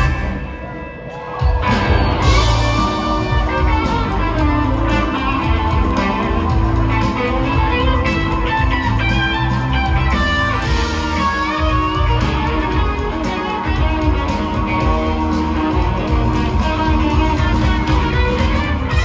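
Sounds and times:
electric guitar lead lines: 0:00.0 - 0:19.0
live rock band playing: 0:00.0 - 0:19.0.

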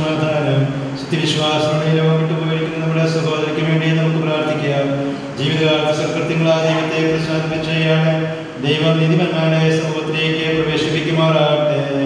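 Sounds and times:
man chanting prayers: 0:00.0 - 0:12.0.

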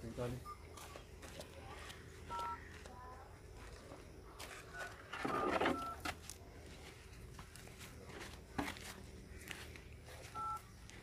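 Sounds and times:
faint background noise: 0:00.0 - 0:11.0
telephone keypad tone: 0:04.7 - 0:06.1, 0:10.4 - 0:10.7.

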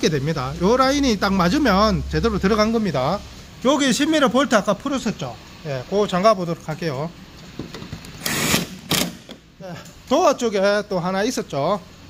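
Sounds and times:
power drill running: 0:08.2 - 0:09.2.

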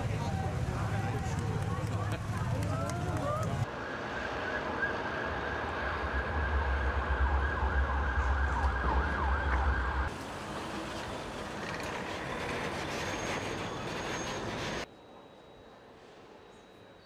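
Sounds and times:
crowd voices: 0:00.0 - 0:03.7
low traffic rumble: 0:00.0 - 0:14.9.

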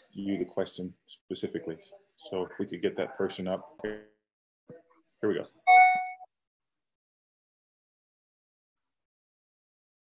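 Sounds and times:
notification chime: 0:05.7 - 0:06.2.

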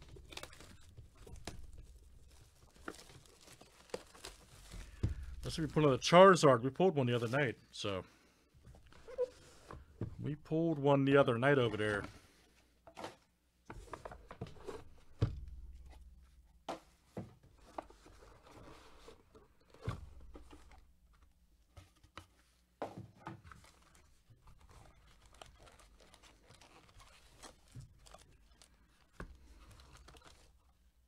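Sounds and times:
plastic wrapping rustling: 0:00.0 - 0:06.2, 0:23.5 - 0:31.0.

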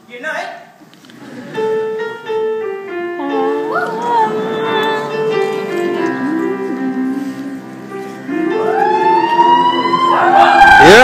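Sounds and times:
keyboard music: 0:01.2 - 0:11.0.

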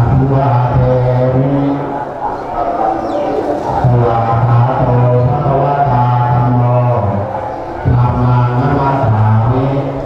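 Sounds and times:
monks chanting in low monotone: 0:00.0 - 0:10.0.

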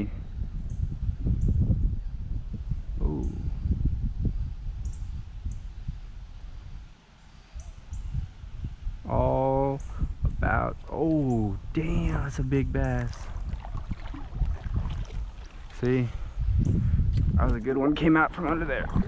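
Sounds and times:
wind buffeting microphone: 0:00.0 - 0:19.0
man's voice: 0:09.1 - 0:09.8, 0:10.4 - 0:13.3, 0:15.8 - 0:16.2, 0:17.4 - 0:19.0.

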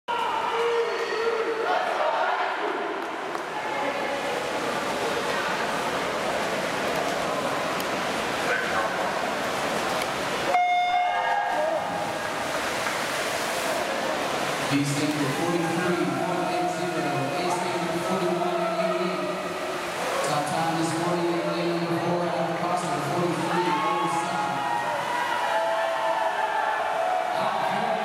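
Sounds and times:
crowd chatter: 0:00.1 - 0:28.0.

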